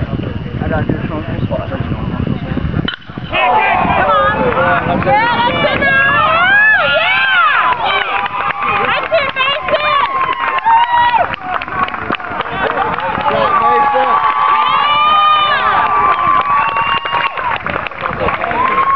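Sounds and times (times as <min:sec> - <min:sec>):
spectators yelling and cheering: 0:03.2 - 0:18.9.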